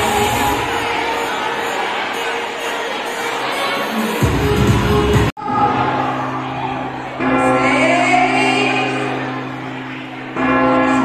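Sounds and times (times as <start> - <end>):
bell chimes: 6.2 - 11.0.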